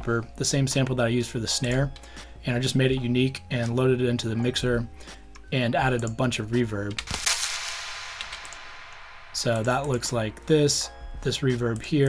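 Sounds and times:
hissing cymbal hit with reverb: 7.2s - 9.6s.

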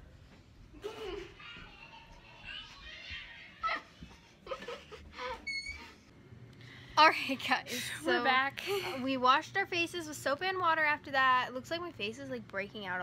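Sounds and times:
high squeak: 5.3s - 6.0s.

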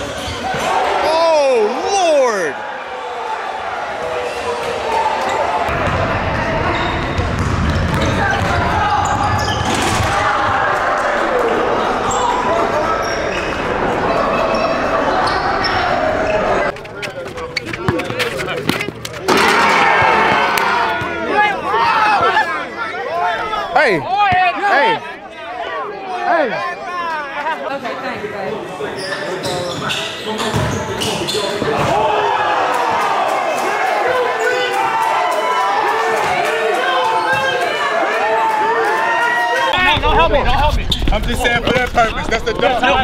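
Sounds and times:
crowd yelling and cheering: 0.0s - 28.0s, 30.4s - 43.0s
basketball bouncing: 7.0s - 9.2s.

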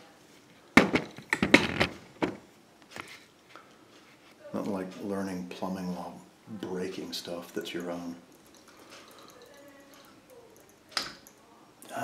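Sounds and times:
handling knocks and clatters: 0.8s - 3.2s.

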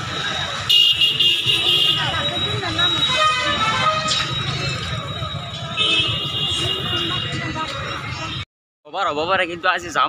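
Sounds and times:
street noise: 0.0s - 10.0s
people talking: 1.6s - 10.0s
vehicle horn honking: 3.0s - 4.3s, 5.8s - 7.4s.

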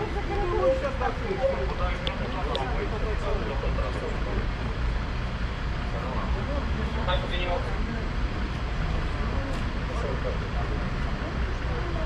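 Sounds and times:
bus engine idling: 0.0s - 12.0s
people talking indistinctly: 0.0s - 12.0s.

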